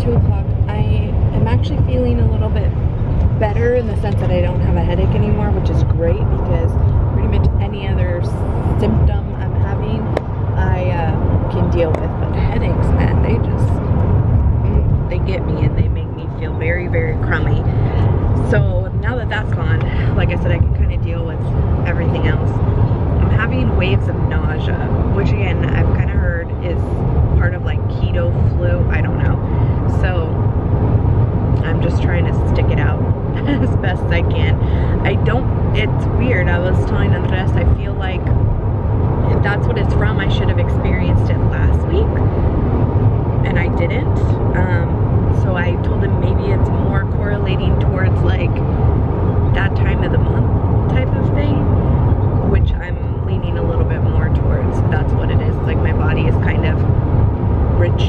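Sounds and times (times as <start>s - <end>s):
woman talking: 0.0s - 13.8s, 14.6s - 30.5s, 31.6s - 38.4s, 39.2s - 42.2s, 43.4s - 48.6s, 49.4s - 51.7s, 52.4s - 56.9s, 57.7s - 58.0s
car road and engine rumble: 0.0s - 58.0s.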